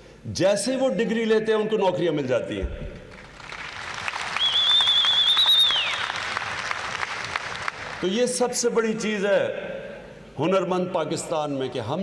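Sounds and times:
audience applause: 3.2 - 8.0
high wavering whistle: 4.4 - 6.1.

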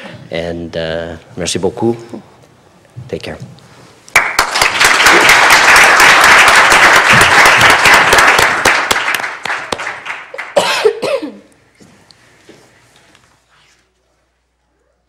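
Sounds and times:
audience applauding: 4.1 - 10.6
person coughing: 10.6 - 11.5.

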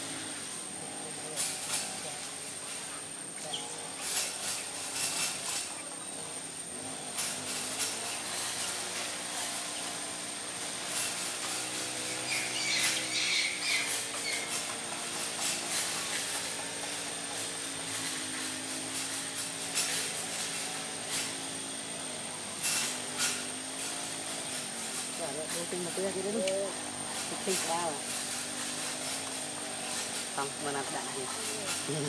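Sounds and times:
bird chirps: 12.1 - 14.5.

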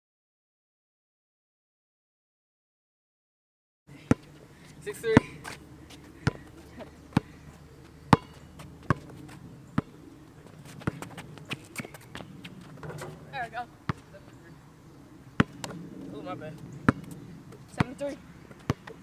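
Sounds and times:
basketball bouncing on asphalt: 4.0 - 14.5, 15.3 - 19.0.

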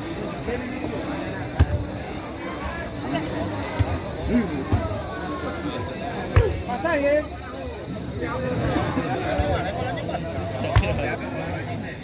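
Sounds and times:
spectators chatting: 0.0 - 12.0
football kicked thuds: 1.6 - 1.8, 10.7 - 11.0.

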